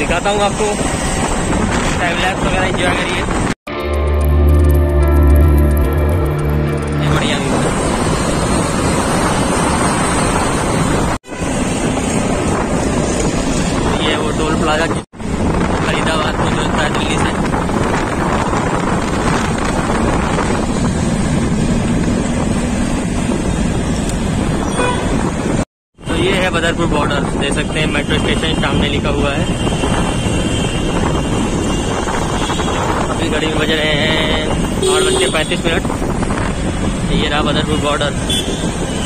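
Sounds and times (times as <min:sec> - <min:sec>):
wind rushing over microphone: 0:00.0 - 0:03.6, 0:05.2 - 0:39.0
road and traffic noise: 0:00.0 - 0:39.0.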